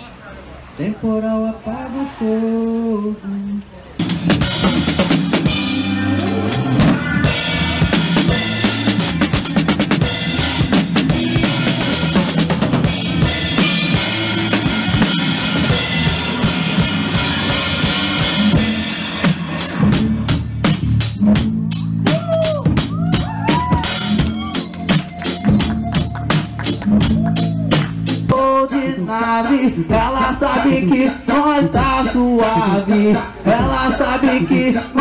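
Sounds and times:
acoustic drum kit playing: 4.0 - 35.0
pop backing track: 4.0 - 35.0.

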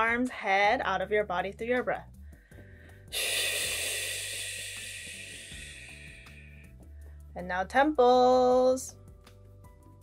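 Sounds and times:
soft background music: 0.0 - 10.0
person sighing: 3.1 - 6.6.

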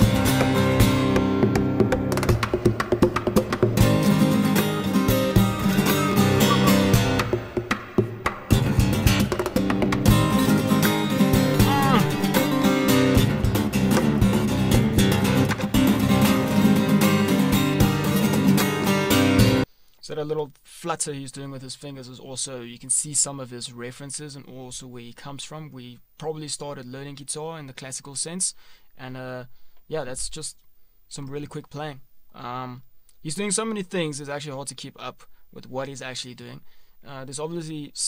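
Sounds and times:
fingerstyle acoustic guitar: 0.0 - 19.6.

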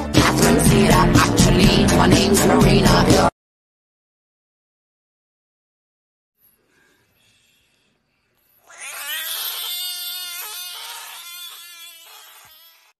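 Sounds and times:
frog screaming: 8.6 - 13.0.

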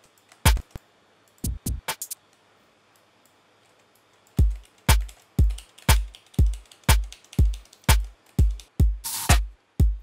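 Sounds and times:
electronic kick drum hits: 4.4 - 10.0.

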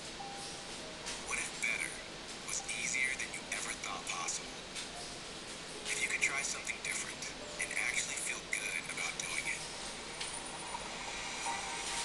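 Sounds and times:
steady hissing rushing noise: 0.0 - 12.0.

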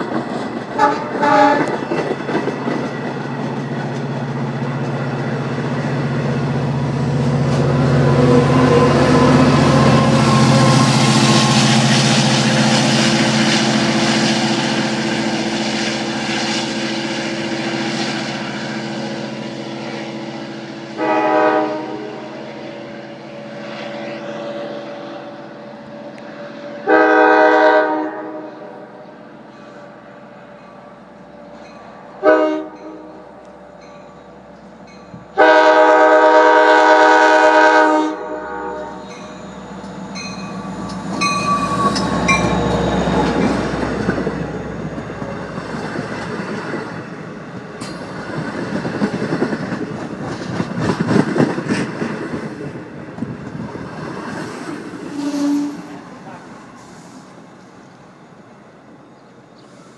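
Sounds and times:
train wheels clacking on rails: 0.0 - 15.9, 39.0 - 56.0
diesel locomotive engine: 0.0 - 59.9
train air horn blasts: 0.8 - 1.8, 7.8 - 14.6, 21.0 - 25.6, 26.2 - 29.0, 32.2 - 33.2, 35.3 - 39.2, 55.1 - 56.0.

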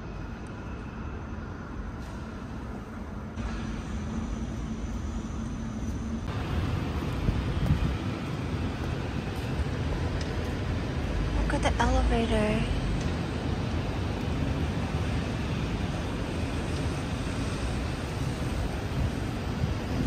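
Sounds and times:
traffic noise: 0.0 - 20.0.

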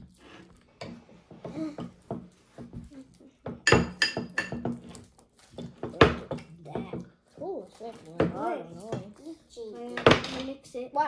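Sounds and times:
spoon knocking against a bowl: 3.5 - 4.8.

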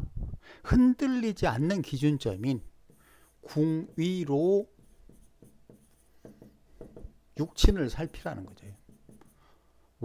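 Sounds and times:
stylus scratching on a tablet: 1.6 - 9.6.

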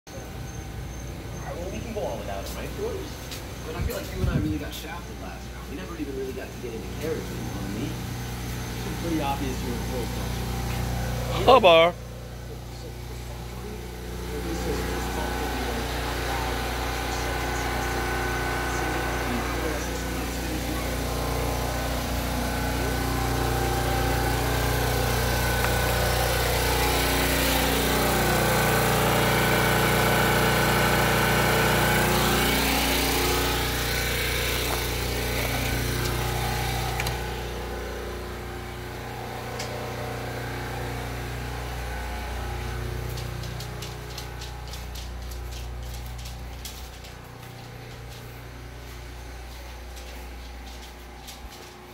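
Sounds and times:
portable generator running: 0.2 - 51.9.

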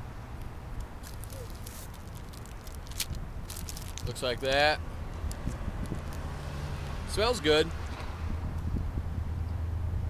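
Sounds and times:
low background rumble: 0.0 - 7.1
plastic wrapper tearing and crinkling: 1.0 - 6.2.

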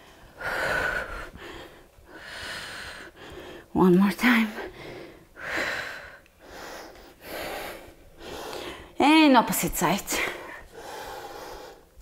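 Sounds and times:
woman breathing hard: 0.0 - 3.7, 4.6 - 9.0, 10.4 - 12.0.

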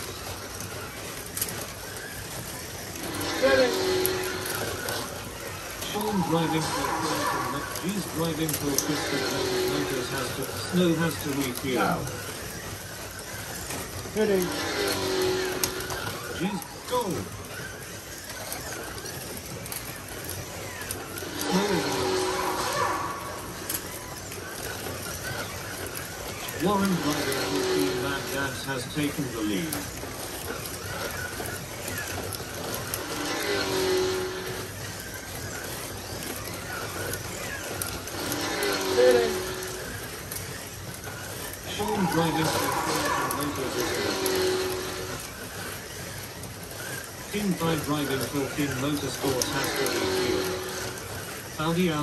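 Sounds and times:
slot cars whirring on track: 0.0 - 52.0.

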